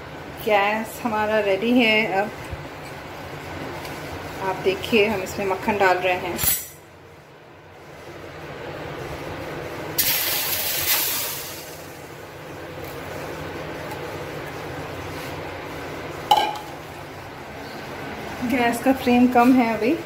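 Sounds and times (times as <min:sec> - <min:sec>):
butter sizzling in a pan: 0:10.0 - 0:11.9.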